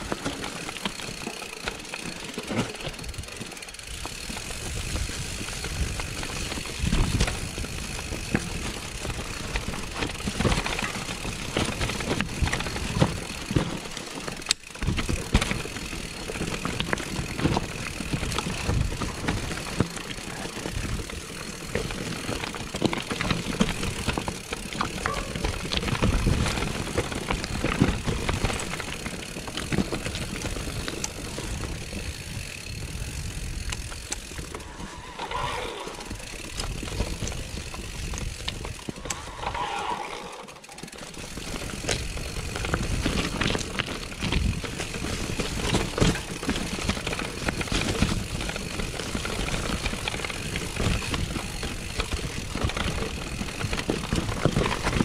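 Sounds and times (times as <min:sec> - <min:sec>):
bike knocking and rattling: 0:00.0 - 0:55.0
bike tyres rumbling over stones: 0:00.0 - 0:55.0.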